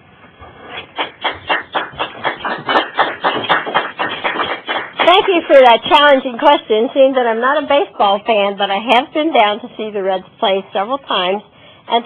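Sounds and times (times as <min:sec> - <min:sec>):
small audience clapping: 0:00.7 - 0:06.2.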